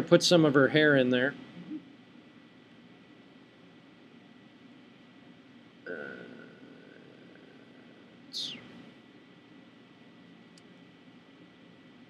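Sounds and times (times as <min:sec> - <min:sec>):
faint high-pitched whine: 0:00.0 - 0:12.0
soft vocal hum: 0:01.5 - 0:02.0, 0:05.9 - 0:09.0.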